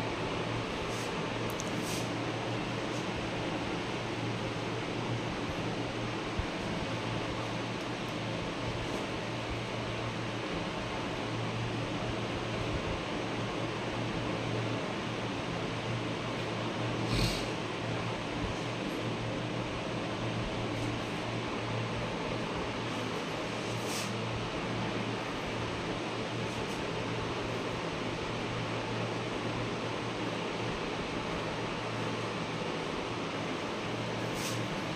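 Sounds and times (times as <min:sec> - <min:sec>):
steady hiss: 0:00.7 - 0:04.3, 0:23.0 - 0:24.4, 0:33.7 - 0:34.9.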